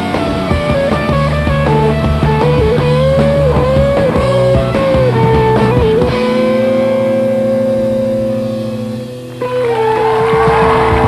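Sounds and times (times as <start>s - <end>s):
distorted electric guitar note: 0.0s - 11.0s.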